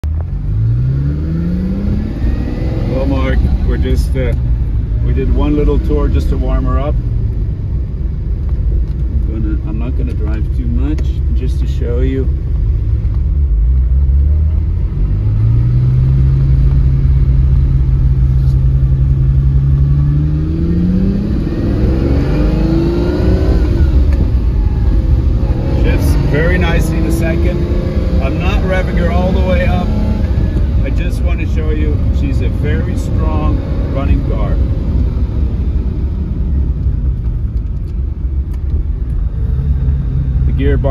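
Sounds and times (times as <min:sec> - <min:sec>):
car engine accelerating: 0:00.0 - 0:40.9.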